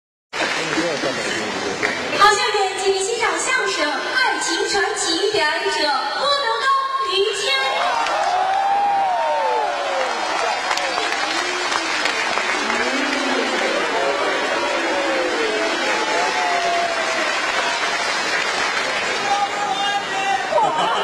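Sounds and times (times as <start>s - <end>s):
audience applauding: 0.4s - 2.2s, 7.9s - 21.0s.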